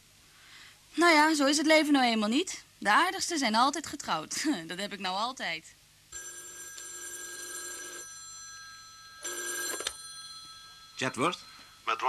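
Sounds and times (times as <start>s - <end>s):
telephone bell ringing: 6.2s - 12.0s.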